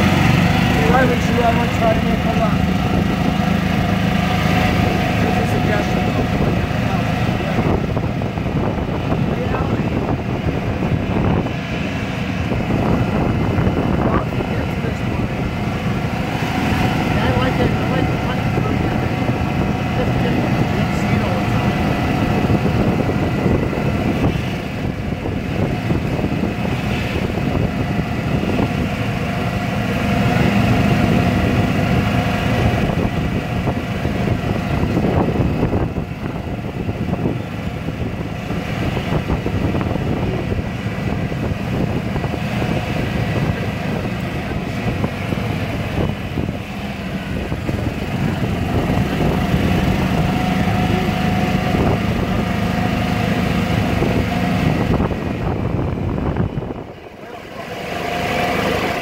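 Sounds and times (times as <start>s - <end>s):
small vehicle engine running: 0.0s - 59.0s.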